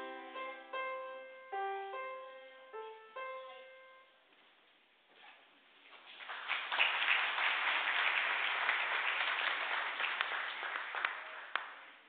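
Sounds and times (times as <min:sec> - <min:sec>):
crowd applauding: 0:06.1 - 0:12.0.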